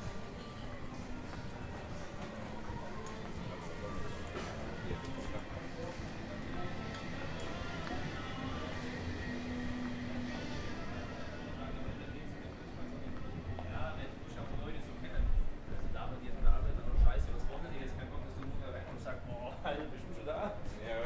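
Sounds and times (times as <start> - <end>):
faint music: 0.0 - 21.0.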